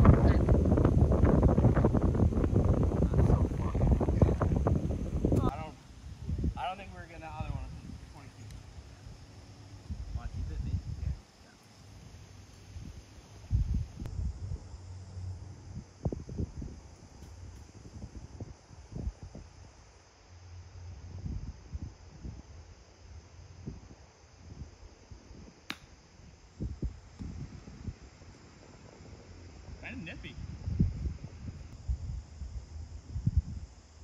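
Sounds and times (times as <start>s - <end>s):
wind buffeting microphone: 0.0s - 11.2s, 12.6s - 19.7s, 20.9s - 22.6s, 23.5s - 34.0s
golf club striking ball: 25.7s - 25.9s.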